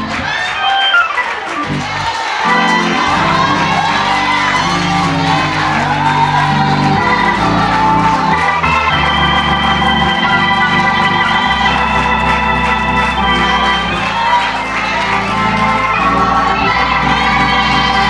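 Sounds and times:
church praise music: 0.0 - 18.0
congregation cheering and shouting: 0.0 - 18.0
keyboard and bass notes: 0.0 - 18.0.

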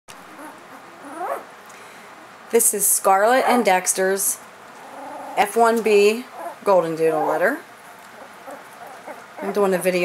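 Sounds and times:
puppies squeaking: 0.3 - 1.5, 8.1 - 9.7
puppy whimpering cry: 0.3 - 1.5, 8.2 - 9.7.

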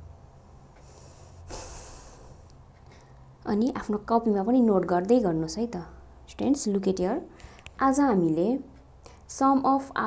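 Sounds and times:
steady low hum: 0.0 - 10.0
breath into microphone: 0.8 - 3.2.

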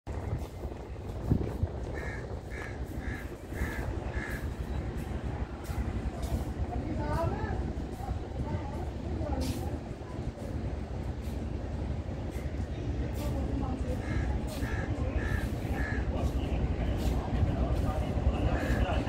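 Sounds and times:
train rumbling slowly: 0.1 - 19.0
crow cawing: 2.0 - 4.5.

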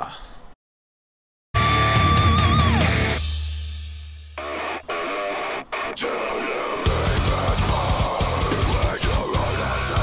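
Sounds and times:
distorted electric guitar metal music: 1.6 - 10.0.

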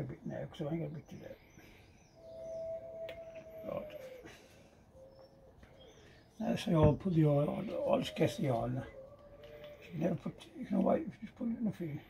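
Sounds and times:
faint bird call: 1.5 - 6.6.

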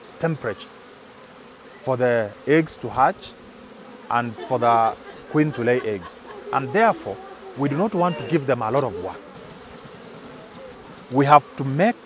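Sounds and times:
honey bee swarm buzzing: 0.0 - 12.0.

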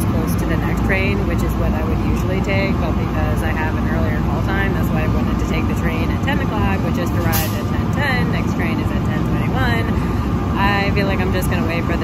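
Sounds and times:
train rumbling: 0.0 - 12.0
woman speaking: 0.0 - 12.0.

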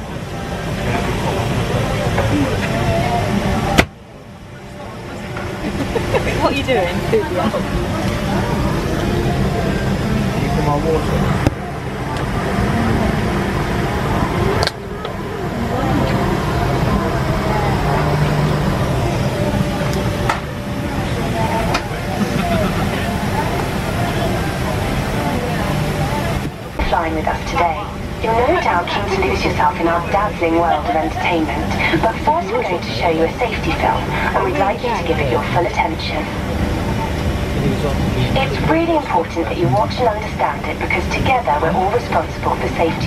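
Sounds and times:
indistinct passenger chatter: 0.0 - 43.0
low ventilation hum: 0.0 - 43.0.

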